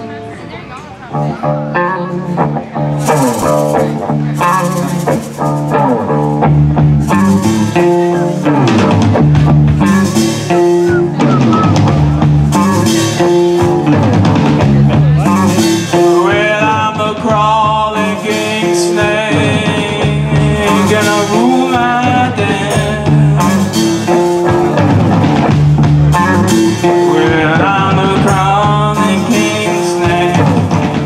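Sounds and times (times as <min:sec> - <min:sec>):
bass guitar: 0:00.0 - 0:31.0
electric guitar: 0:00.0 - 0:31.0
drum kit: 0:02.2 - 0:31.0.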